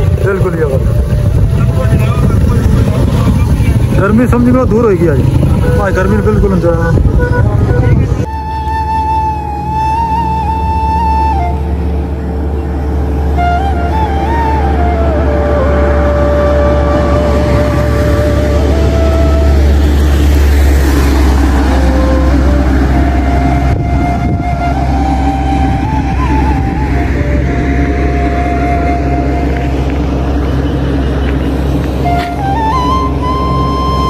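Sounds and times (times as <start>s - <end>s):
low drone: 0.0s - 34.0s
slow melody of held notes: 7.2s - 34.0s.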